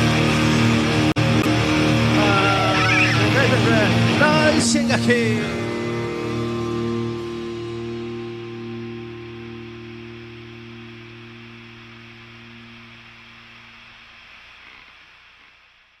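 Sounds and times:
electric guitar and bass chord: 0.0 - 15.7.

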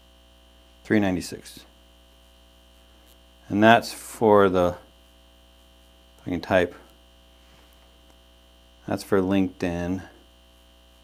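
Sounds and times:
electrical mains hum: 0.0 - 11.0
man speaking: 0.9 - 1.7, 3.5 - 4.9, 6.2 - 6.9, 8.8 - 10.2.

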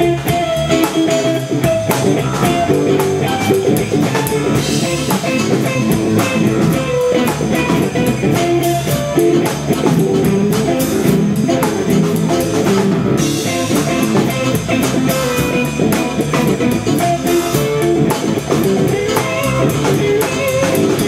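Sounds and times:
blues band playing: 0.0 - 21.0
drum kit beat: 0.0 - 21.0
electric guitar lines: 0.0 - 21.0.

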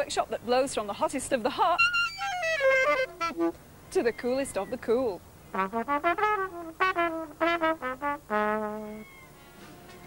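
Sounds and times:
solo trumpet jazz phrase: 1.8 - 3.6, 5.5 - 9.5.

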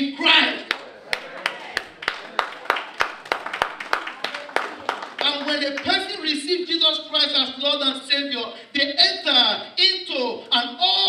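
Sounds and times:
rhythmic hand clapping: 0.6 - 6.1.

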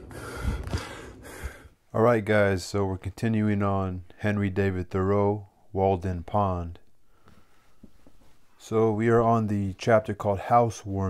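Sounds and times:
person drawing sharp breath: 0.0 - 1.8.

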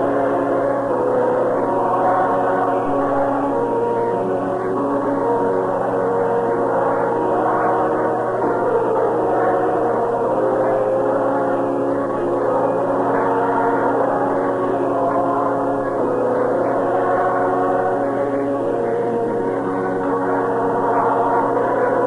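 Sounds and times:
ballpark organ playing chords: 0.0 - 22.0.

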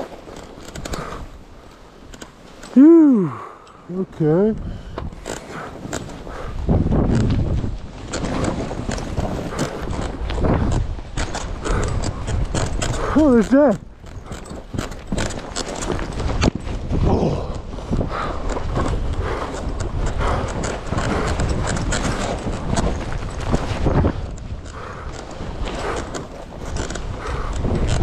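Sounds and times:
wind on microphone: 4.5 - 28.0
skis running through powder: 5.4 - 27.9.

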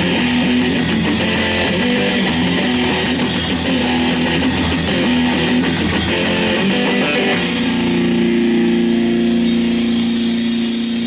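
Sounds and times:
distorted electric guitar chord: 0.0 - 11.0
cymbal hiss: 8.8 - 11.0.

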